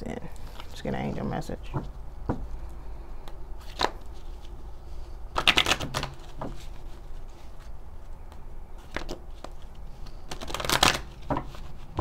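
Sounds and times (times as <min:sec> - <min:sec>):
cards riffling: 0:03.2 - 0:04.6, 0:05.3 - 0:12.0.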